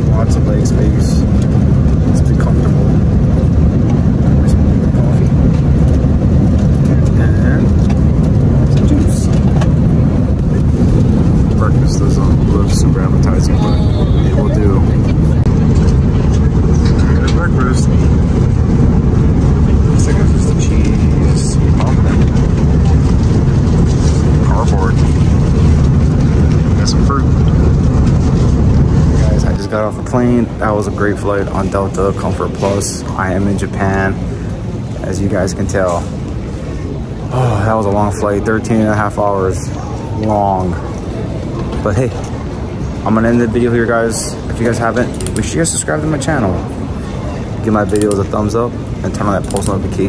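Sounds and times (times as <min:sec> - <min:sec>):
airplane cabin rumble: 0:00.0 - 0:50.0
engine and airflow noise: 0:00.0 - 0:50.0
faint voices: 0:00.0 - 0:50.0.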